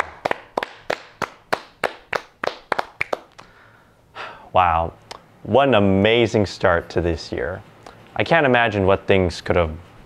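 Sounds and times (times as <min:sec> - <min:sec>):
people clapping: 0:00.0 - 0:03.5.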